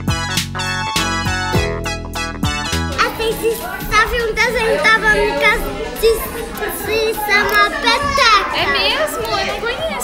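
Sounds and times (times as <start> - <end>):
music playing: 0.0 - 9.3
children's voices and chatter: 2.7 - 10.0.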